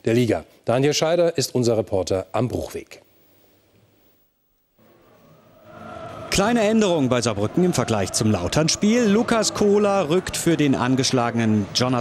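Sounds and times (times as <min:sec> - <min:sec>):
faint outdoor stadium ambience: 0:00.0 - 0:12.0.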